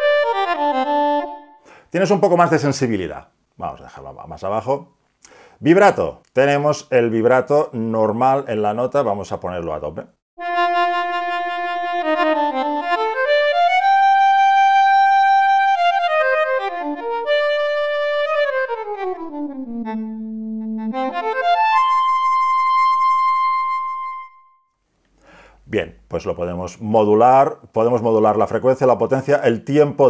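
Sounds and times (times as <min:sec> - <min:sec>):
electronic saxophone with vibrato: 0:00.0 - 0:01.7, 0:10.4 - 0:24.5.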